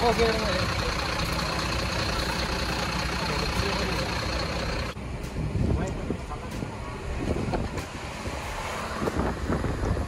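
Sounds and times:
truck diesel engine idling: 0.0 - 5.3
truck moving heard from cab: 0.0 - 10.0.

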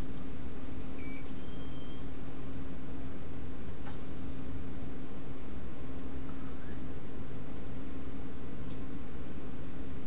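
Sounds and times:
low electrical hum: 0.0 - 10.0
faint high tones: 0.9 - 2.5.

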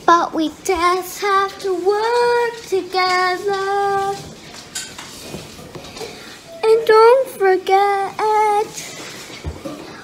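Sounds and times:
girl singing: 0.0 - 4.4, 6.6 - 9.0.

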